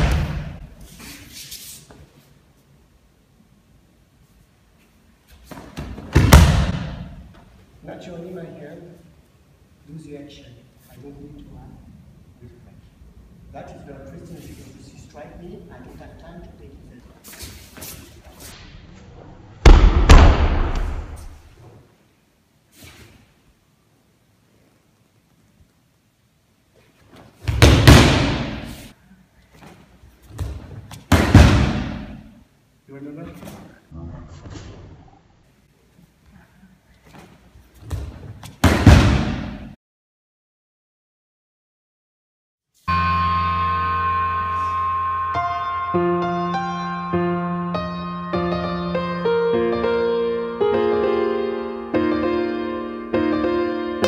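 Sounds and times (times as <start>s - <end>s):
bodies slamming onto mats: 5.5s - 7.1s, 27.4s - 28.6s, 30.3s - 32.1s, 37.9s - 39.6s.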